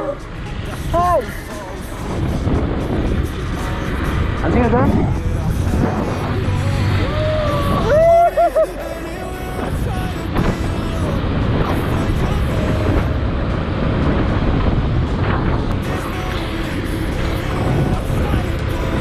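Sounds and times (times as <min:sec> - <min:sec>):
steady rushing noise: 0:00.0 - 0:19.0.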